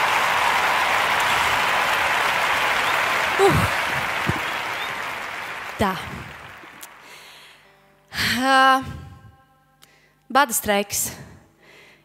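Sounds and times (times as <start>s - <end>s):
applause: 0.0s - 7.6s
vocal exclamation: 3.4s - 4.0s.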